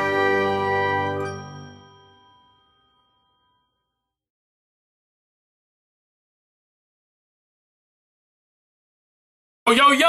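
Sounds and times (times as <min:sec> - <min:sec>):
chime-like chord: 0:00.0 - 0:04.1.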